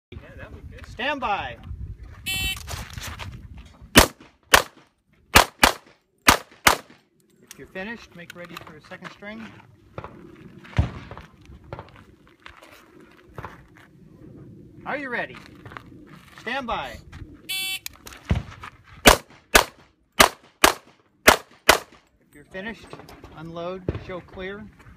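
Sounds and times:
pistol shots: 0:04.0 - 0:07.0, 0:19.0 - 0:22.0.

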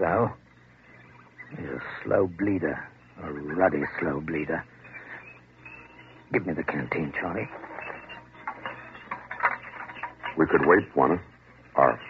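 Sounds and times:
low recording hum: 0:00.0 - 0:12.0
clicks and rustles: 0:06.6 - 0:11.4.

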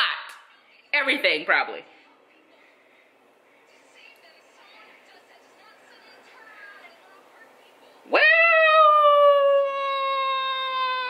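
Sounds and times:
woman whooping: 0:08.1 - 0:11.0.

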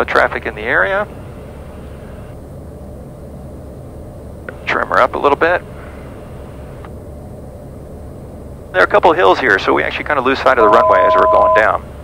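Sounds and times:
turboprop cabin drone: 0:00.0 - 0:12.0
faint steady tone: 0:05.7 - 0:12.0.

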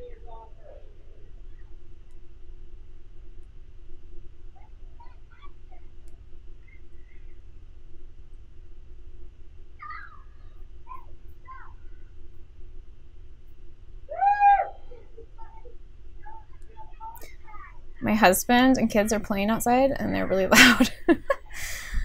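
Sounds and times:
children shouting outside: 0:09.8 - 0:12.1, 0:14.1 - 0:17.8.

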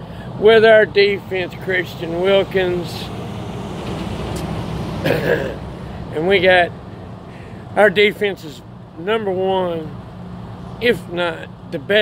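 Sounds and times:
road vehicle roar: 0:00.0 - 0:12.0.

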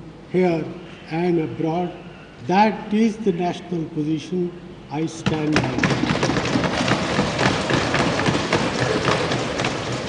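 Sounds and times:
crowd thumping desks: 0:05.1 - 0:10.0.

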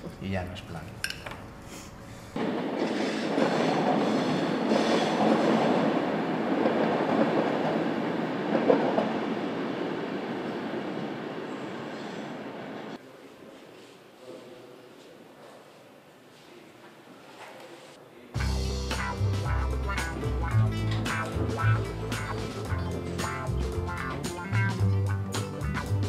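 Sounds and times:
train passing: 0:02.4 - 0:13.0, 0:18.4 - 0:26.0.

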